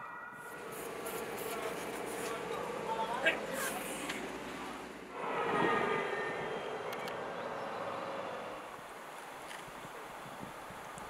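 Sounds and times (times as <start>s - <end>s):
vehicle driving by: 0.5s - 9.5s.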